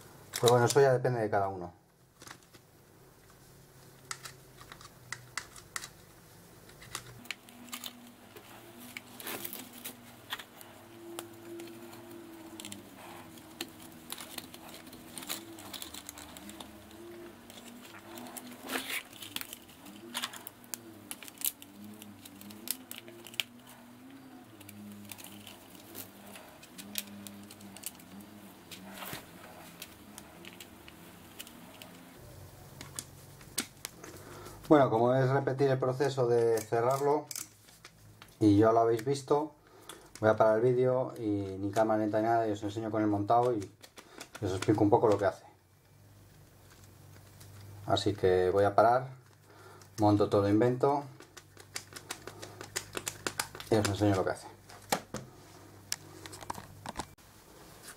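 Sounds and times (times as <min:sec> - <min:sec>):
plastic parts clicking and tapping: 0:04.0 - 0:06.0, 0:43.4 - 0:45.3, 0:51.2 - 0:55.3.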